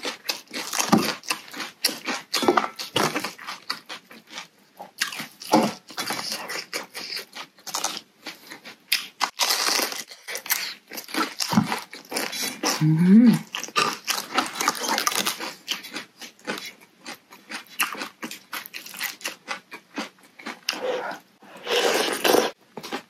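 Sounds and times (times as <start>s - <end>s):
crisp chewing crunches: 0.0s - 23.0s.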